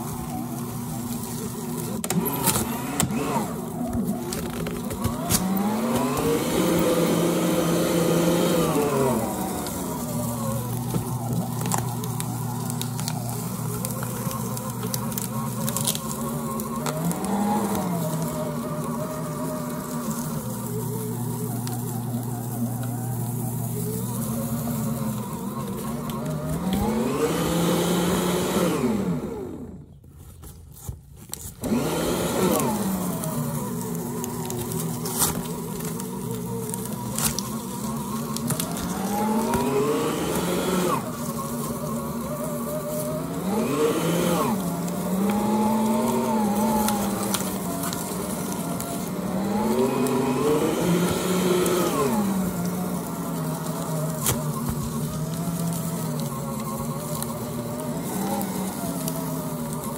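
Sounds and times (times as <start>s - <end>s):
cardboard crackling as cut: 0.0s - 28.2s, 30.2s - 59.9s
paper shredder motor buzzing: 0.0s - 59.9s.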